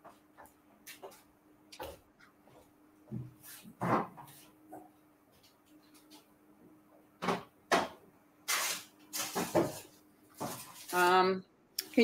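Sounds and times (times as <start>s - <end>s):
rustling and scraping: 2.5s - 6.3s, 8.5s - 11.2s.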